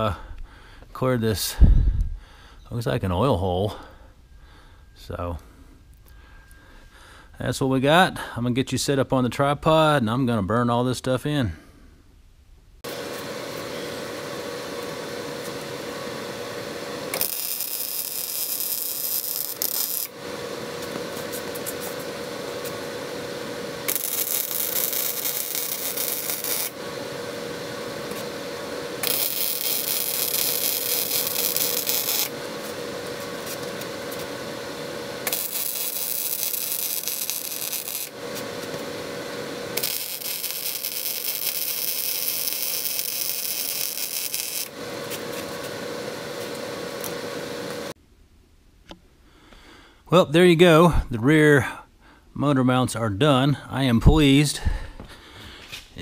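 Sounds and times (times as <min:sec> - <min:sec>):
steady background hum: 0:00.0 - 0:56.0
welding arc sizzling: 0:12.8 - 0:48.0.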